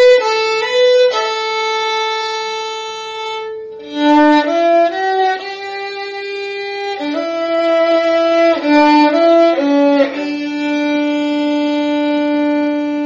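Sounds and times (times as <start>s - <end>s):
violin playing hymn melody: 0.0s - 13.0s.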